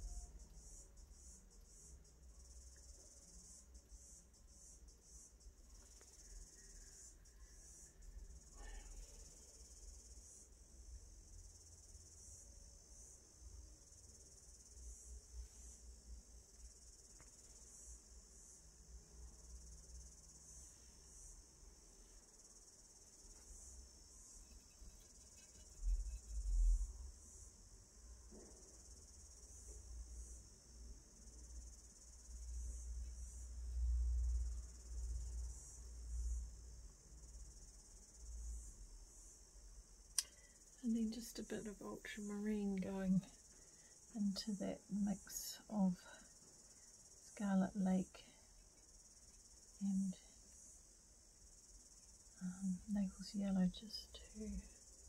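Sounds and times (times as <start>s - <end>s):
high-pitched insect chorus: 0.0s - 55.0s.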